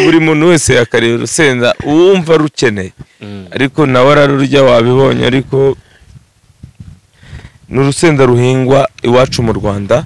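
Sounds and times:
man talking: 0.0 - 5.8, 7.7 - 10.0.

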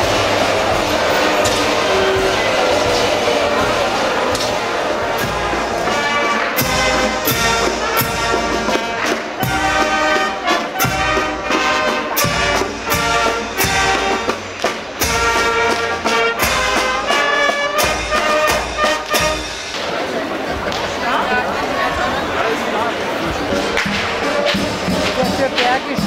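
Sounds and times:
marching brass band playing: 0.0 - 26.0.

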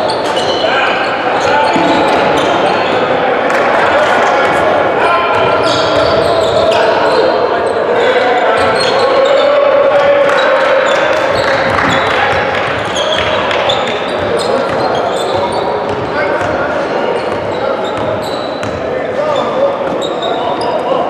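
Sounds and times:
shoes squeaking on court: 0.0 - 3.1, 5.6 - 7.3, 11.3 - 21.0.

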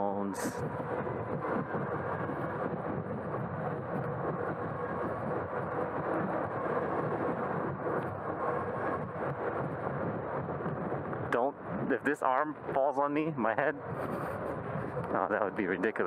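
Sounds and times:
faint steady whine: 0.0 - 16.0
wind buffeting camera: 0.0 - 16.0.

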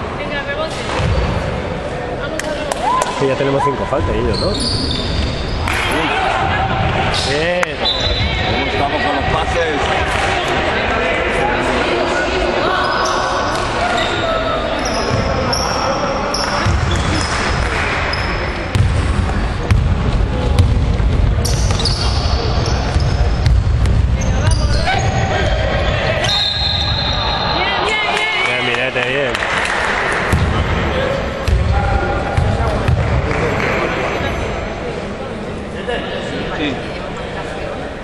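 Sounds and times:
sneakers squeaking on floor: 4.0 - 5.8, 7.2 - 8.6, 12.8 - 14.2, 14.8 - 19.9, 20.6 - 27.6.

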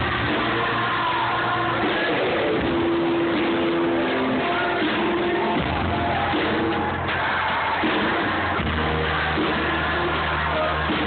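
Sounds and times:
live rock band playing loud: 0.0 - 11.0.

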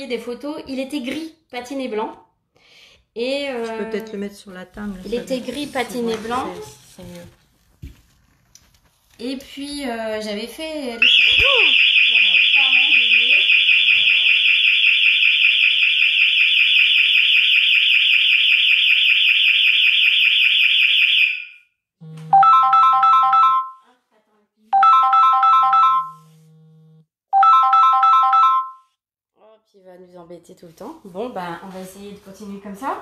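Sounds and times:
burglar alarm siren warbling: 11.0 - 23.7.

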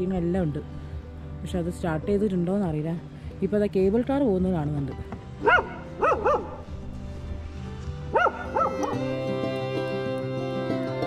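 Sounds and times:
background music: 0.0 - 11.0
dog yipping: 5.4 - 6.6, 8.1 - 9.0.

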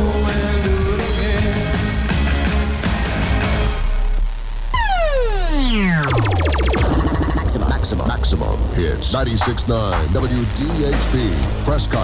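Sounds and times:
electronic tone sweeping down: 4.6 - 10.3
fast electronic pulsing: 4.8 - 10.9.

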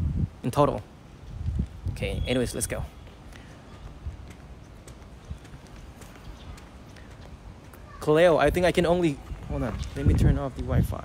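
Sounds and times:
footsteps on pavement: 1.2 - 10.8.

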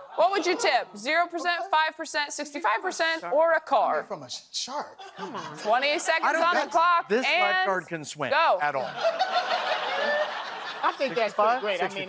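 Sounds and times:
audience laughing: 8.8 - 12.0.

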